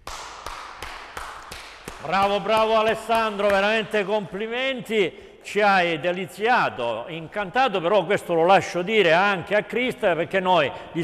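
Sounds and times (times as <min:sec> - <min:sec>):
people clapping: 0:00.0 - 0:04.1.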